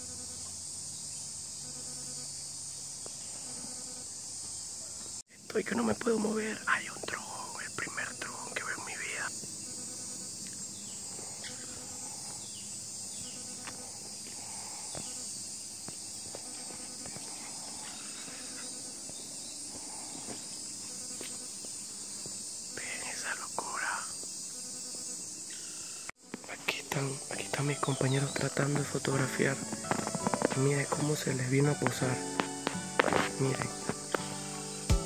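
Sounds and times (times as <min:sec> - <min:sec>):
high-pitched insect chorus: 0:00.0 - 0:35.0
people whispering: 0:05.3 - 0:09.3, 0:22.8 - 0:24.2, 0:26.4 - 0:34.4.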